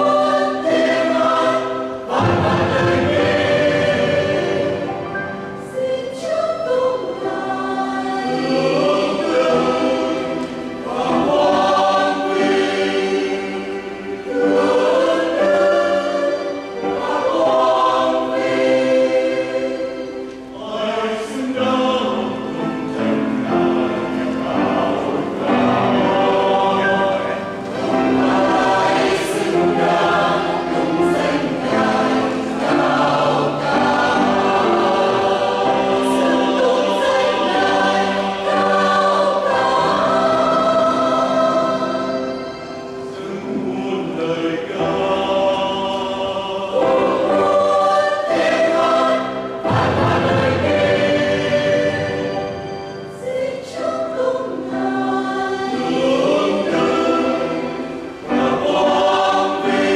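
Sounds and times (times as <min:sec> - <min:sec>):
choir singing a hymn in harmony: 0:00.0 - 0:59.9.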